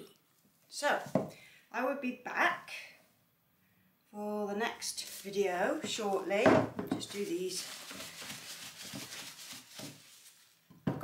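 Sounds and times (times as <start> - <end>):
gloved hands rustling: 4.9 - 10.7.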